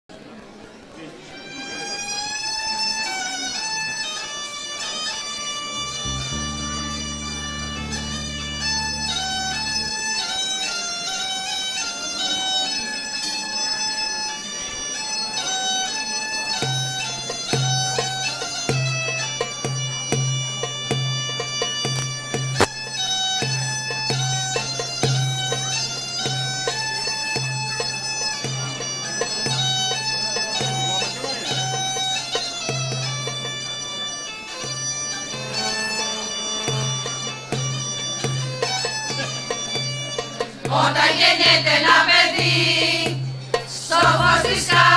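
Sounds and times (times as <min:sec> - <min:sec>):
bagpipe playing lively melody: 0:01.3 - 0:44.9
deep held drone note: 0:05.8 - 0:10.3.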